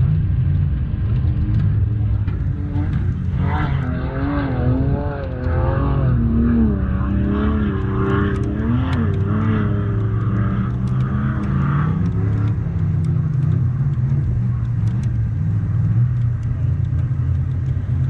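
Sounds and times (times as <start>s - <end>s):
engine revving under load: 1.3s - 18.0s.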